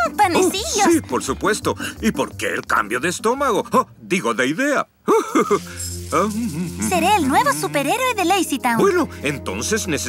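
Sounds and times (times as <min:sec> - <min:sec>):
light background music: 0:00.0 - 0:10.0.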